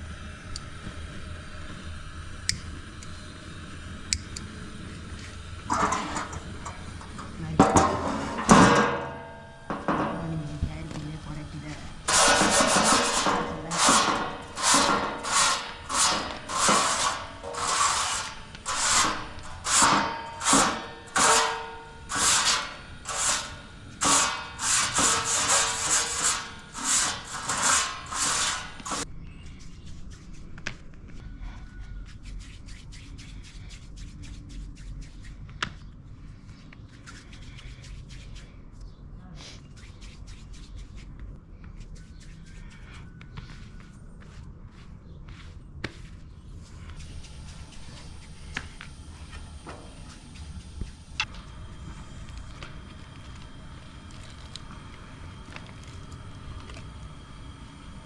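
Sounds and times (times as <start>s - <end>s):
brush scraping metal griddle: 5.2s - 30.5s, 46.5s - 50.8s.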